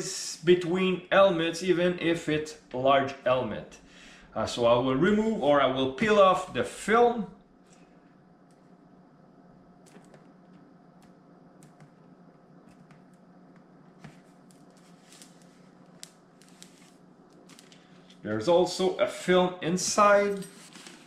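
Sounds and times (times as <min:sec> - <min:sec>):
low steady hum: 0:00.0 - 0:21.0
plastic film crackling: 0:14.4 - 0:18.2.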